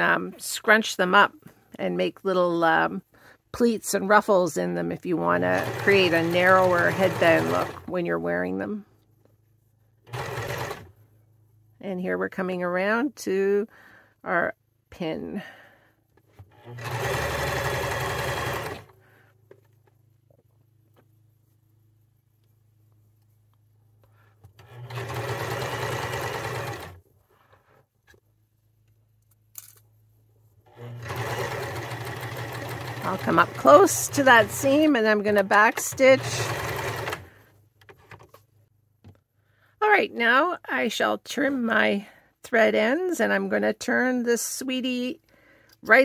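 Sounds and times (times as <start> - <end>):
electric sewing machine stitching: 5.3 - 7.9, 10.0 - 10.9, 16.4 - 19.0, 24.5 - 27.0, 30.7 - 37.4.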